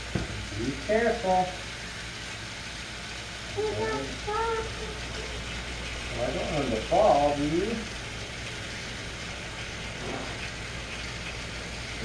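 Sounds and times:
toy train motor whir: 0.7s - 12.0s.

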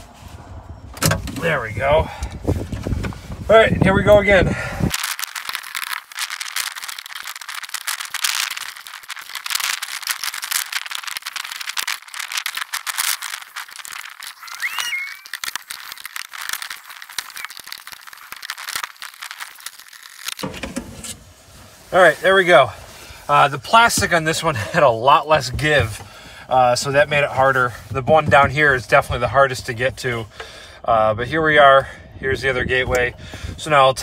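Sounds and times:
plastic clicks and rattles: 4.9s - 21.1s
brief squeak: 14.4s - 15.2s.

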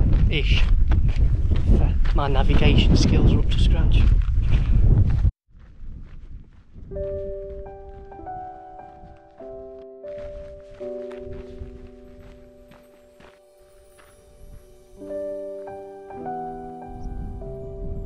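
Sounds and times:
wind buffeting microphone: 0.0s - 9.6s, 16.3s - 18.0s
faint footsteps on dirt path: 0.0s - 16.4s
soft piano music: 6.9s - 18.0s.

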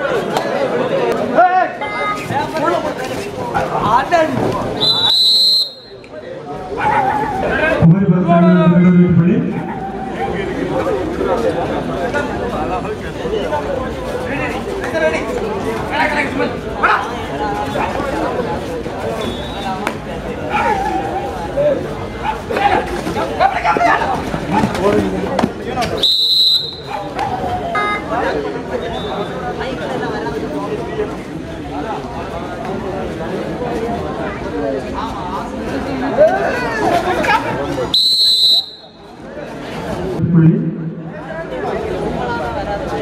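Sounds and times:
crowd chatter: 0.0s - 43.0s
referee's whistle blast: 4.8s - 6.0s, 26.0s - 27.0s, 27.8s - 28.0s, 38.0s - 39.0s.

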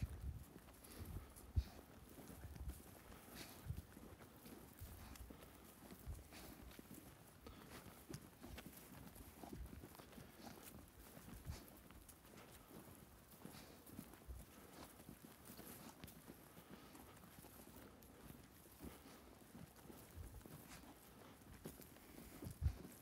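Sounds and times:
footsteps on loose soil: 0.0s - 23.0s.

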